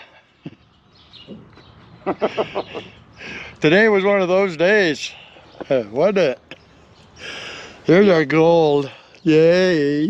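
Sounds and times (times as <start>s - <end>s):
faint outdoor ambience: 0.0s - 10.0s
high bird chirps: 0.4s - 4.2s.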